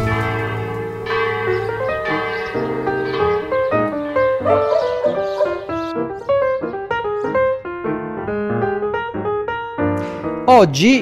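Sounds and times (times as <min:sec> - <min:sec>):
church bells ringing: 0:00.0 - 0:05.9.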